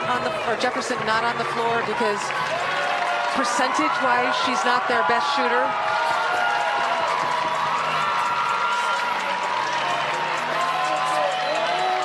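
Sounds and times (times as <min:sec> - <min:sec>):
crowd cheering: 0:00.0 - 0:12.0
crowd clapping: 0:00.0 - 0:12.0.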